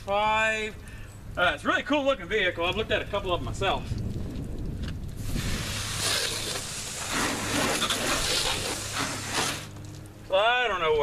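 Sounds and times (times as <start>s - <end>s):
hose water spraying on vehicle: 5.2s - 10.1s.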